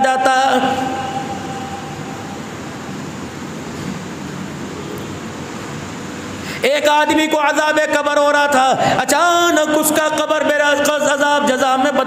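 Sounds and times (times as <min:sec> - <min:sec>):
pedestal fan rushing: 0:00.0 - 0:11.2.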